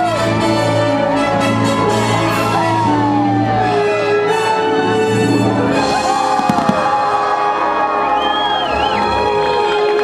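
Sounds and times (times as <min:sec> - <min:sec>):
melodic music: 0:00.0 - 0:09.9
firework bangs: 0:06.2 - 0:07.5.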